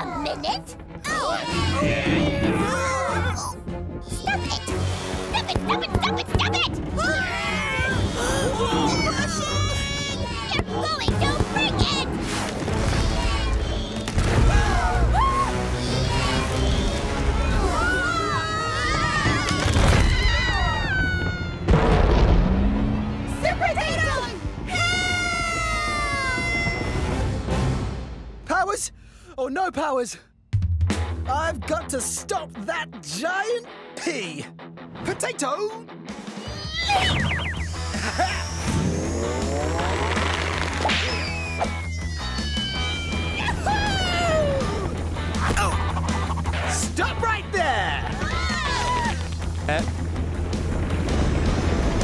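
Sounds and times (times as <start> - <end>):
action music: 0.0 - 29.0, 30.5 - 52.0
cartoon characters screaming: 1.1 - 3.6, 7.0 - 11.9, 12.9 - 21.7, 24.7 - 27.1, 36.4 - 40.0, 40.8 - 45.9, 48.0 - 49.2
heavy crash: 19.2 - 23.1, 49.5 - 52.0
falling whistle-like glide: 40.8 - 43.3.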